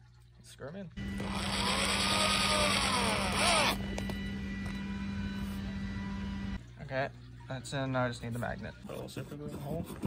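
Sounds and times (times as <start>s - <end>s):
power drill whine: 1.0s - 6.6s
drill click: 1.1s - 3.8s.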